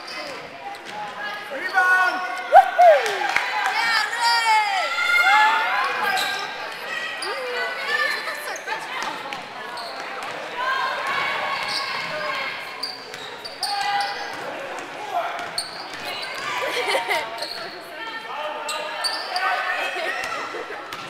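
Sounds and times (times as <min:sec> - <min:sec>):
people shouting: 0:02.5 - 0:05.6.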